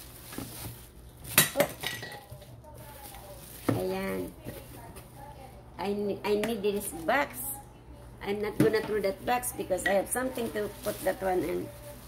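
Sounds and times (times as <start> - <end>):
bubble wrap rustling: 0.0 - 5.7, 9.1 - 12.0.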